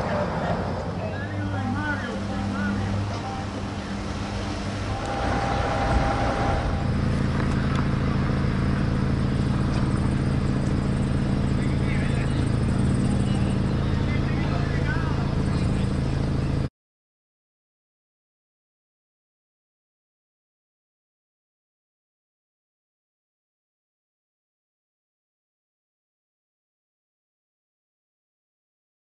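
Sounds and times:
faint voices: 0.0s - 6.0s, 11.5s - 16.7s
vehicle engines idling: 0.0s - 16.7s.

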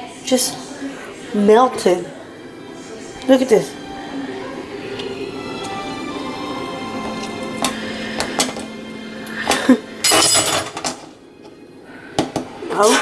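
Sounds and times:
background music with held notes: 0.0s - 13.0s
knife clinking against metal sink: 10.0s - 11.0s.

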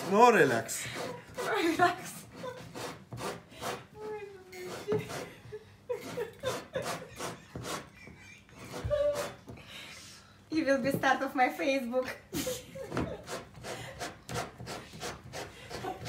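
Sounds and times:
person chuckling: 4.8s - 9.4s, 12.2s - 13.4s.

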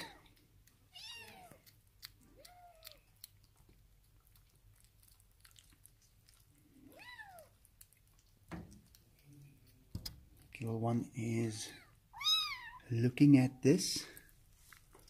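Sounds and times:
kittens mewing: 0.0s - 0.3s, 11.7s - 12.9s.

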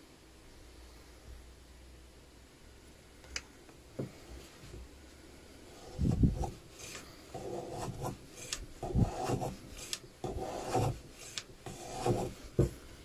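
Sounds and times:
hand plane scraping wood: 5.8s - 12.8s.

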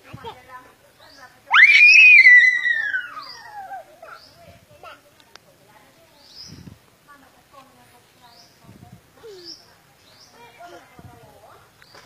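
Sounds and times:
child screaming: 1.5s - 3.9s.

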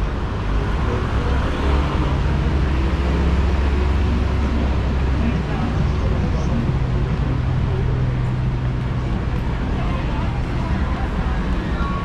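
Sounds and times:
traffic engine hum: 0.0s - 12.0s
indistinct voices: 0.4s - 12.0s.

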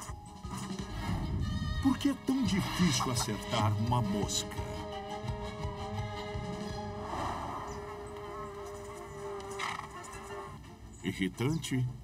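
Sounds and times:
background music: 0.0s - 12.0s
fly buzzing: 0.4s - 10.9s.

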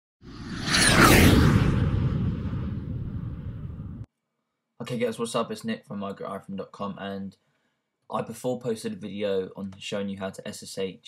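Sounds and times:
falling high streak: 0.2s - 4.0s
whoosh with deep rumble: 0.2s - 4.1s.

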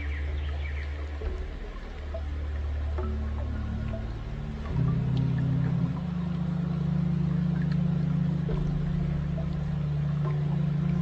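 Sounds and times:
ambient meditation music: 0.0s - 11.0s
sustained low drone: 0.0s - 11.0s.

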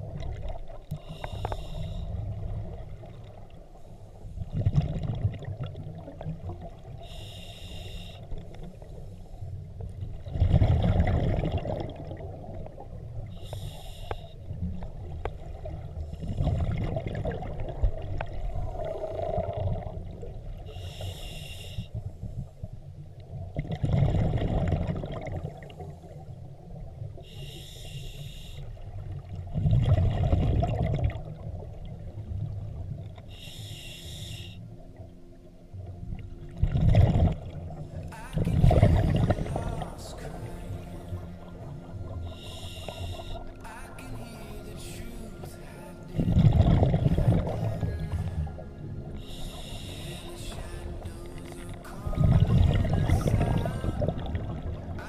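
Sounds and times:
exhaled bubbles rumbling: 0.0s - 7.2s, 9.6s - 13.5s, 14.4s - 20.8s, 22.0s - 27.2s, 28.8s - 33.3s, 35.8s - 55.0s
regulator inhalation hiss: 0.9s - 2.2s, 7.0s - 8.4s, 13.4s - 14.4s, 20.7s - 22.0s, 27.2s - 28.8s, 33.3s - 34.6s, 42.3s - 43.5s, 49.2s - 50.5s.

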